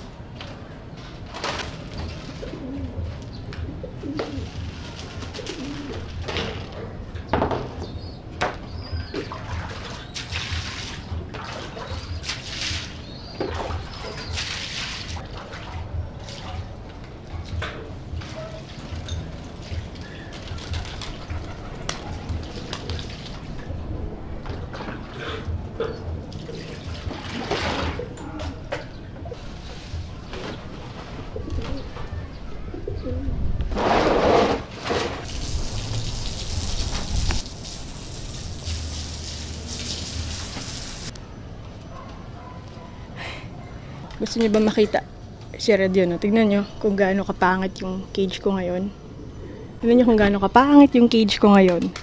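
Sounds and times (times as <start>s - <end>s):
pigeons cooing: 1.9s - 7.2s, 17.4s - 23.8s, 24.6s - 33.4s, 49.0s - 50.2s
water splashing onto floor: 35.3s - 41.1s.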